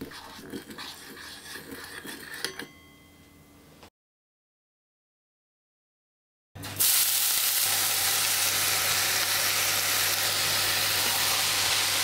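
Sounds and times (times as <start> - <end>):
metal spoon stirring in cup: 0.0 - 2.9
spoon clinking with metallic ring: 2.2 - 3.3.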